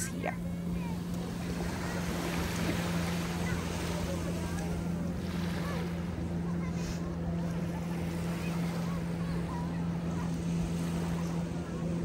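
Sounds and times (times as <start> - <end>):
boat engine droning: 0.0 - 12.0
faint voices: 0.0 - 12.0
small waves washing onto sand: 0.7 - 12.0.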